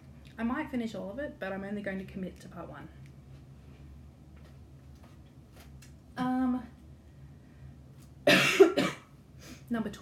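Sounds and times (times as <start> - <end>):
woman coughing: 8.3 - 9.1.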